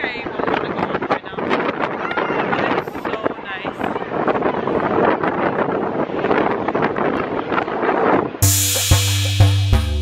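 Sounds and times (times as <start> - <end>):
wind buffeting microphone: 0.0 - 8.6
music with drum beat and bass: 8.4 - 10.0.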